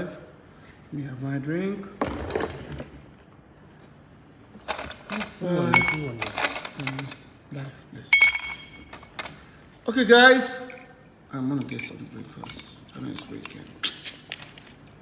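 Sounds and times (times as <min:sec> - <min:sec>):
drinking glass clinking: 0:08.1 - 0:08.9.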